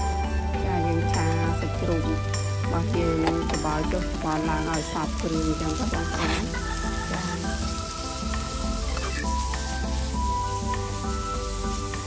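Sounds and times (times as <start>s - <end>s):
background music with held notes: 0.0s - 12.0s
meat sizzling in a wok: 0.0s - 12.0s
metal spatula stirring: 6.0s - 6.8s.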